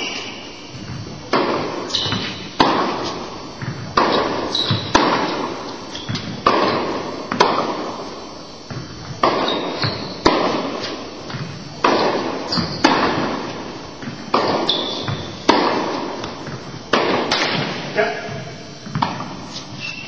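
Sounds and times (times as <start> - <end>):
short high squeaks: 0.0 - 0.5, 1.9 - 2.4, 4.1 - 5.0, 5.9 - 6.3, 9.4 - 10.9, 12.5 - 13.0, 14.6 - 15.2, 19.5 - 20.0
balls bouncing on indoor court: 0.0 - 20.0
tennis balls struck by rackets: 0.0 - 20.0.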